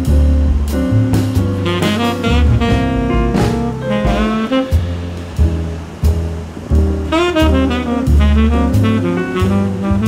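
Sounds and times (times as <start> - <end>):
low bass notes: 0.0 - 10.0
saxophone: 1.6 - 10.0.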